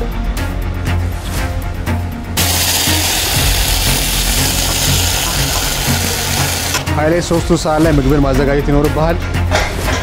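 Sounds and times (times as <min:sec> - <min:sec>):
food sizzling in a pot: 0:02.4 - 0:06.8.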